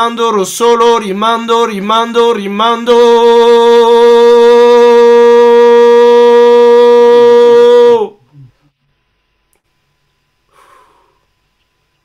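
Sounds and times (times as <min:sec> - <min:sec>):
shofar blast: 0:03.5 - 0:08.2.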